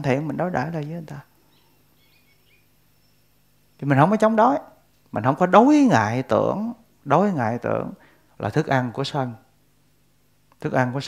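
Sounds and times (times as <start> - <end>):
faint bird chirps: 0.0 - 3.9.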